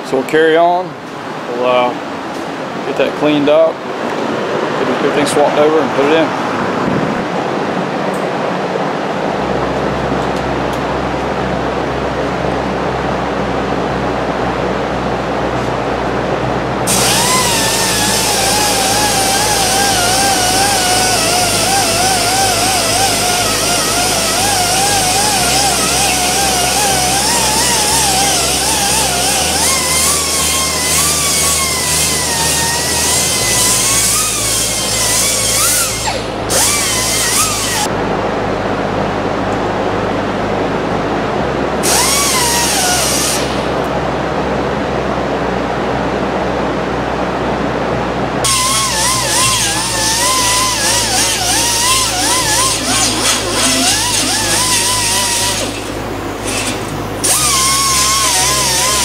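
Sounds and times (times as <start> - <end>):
high-pitched power tool whine: 10.2 - 38.0, 41.4 - 44.0, 48.4 - 59.0.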